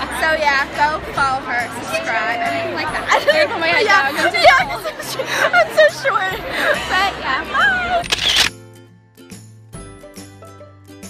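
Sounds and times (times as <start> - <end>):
young women laughing and talking: 0.0 - 8.4
camera shutter click: 8.0 - 8.5.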